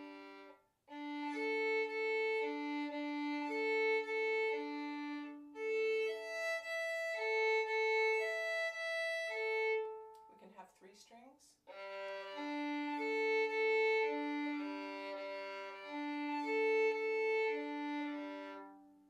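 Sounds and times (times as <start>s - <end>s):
violin bowing across strings: 0.0s - 10.5s, 11.7s - 19.0s.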